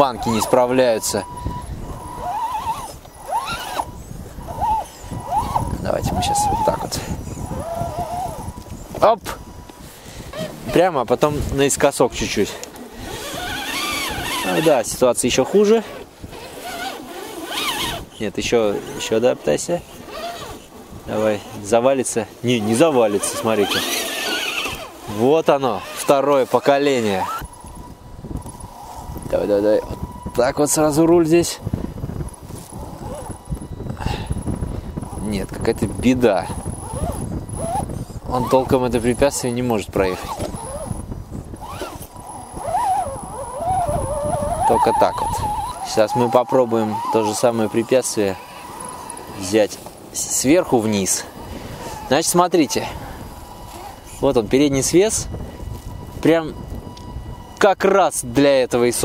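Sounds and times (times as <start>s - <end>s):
tyres scraping in dirt: 0.0s - 27.6s, 35.1s - 54.9s
electric motor whining under load: 0.0s - 59.0s.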